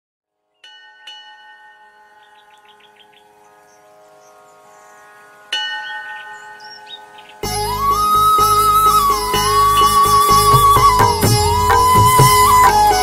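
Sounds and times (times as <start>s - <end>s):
bird chirps: 2.2s - 5.1s, 5.9s - 12.8s.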